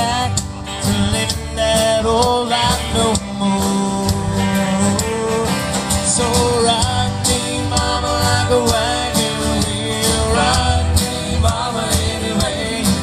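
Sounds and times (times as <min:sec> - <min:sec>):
country band playing: 0:00.0 - 0:13.0.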